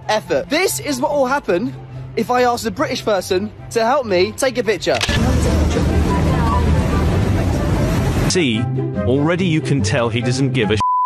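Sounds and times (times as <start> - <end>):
road traffic rumble: 3.3 - 8.3.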